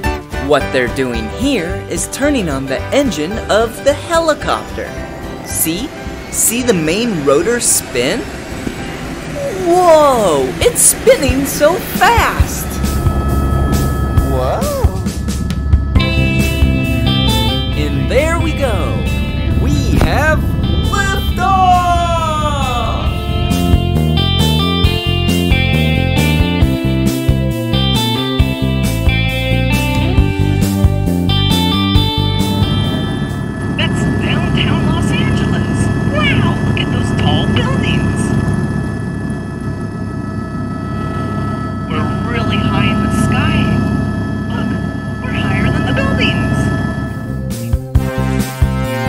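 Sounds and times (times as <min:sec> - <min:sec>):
upbeat background music: 0:00.0 - 0:08.3
helicopter rumble from cabin: 0:01.6 - 0:49.0
voice-like sounds: 0:09.4 - 0:12.8, 0:14.2 - 0:15.1.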